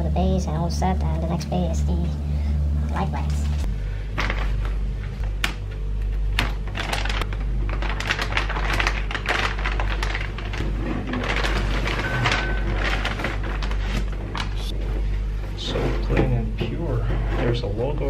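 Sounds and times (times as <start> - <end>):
steady low hum: 0.0 - 18.0
plastic bag crinkling: 6.5 - 14.7.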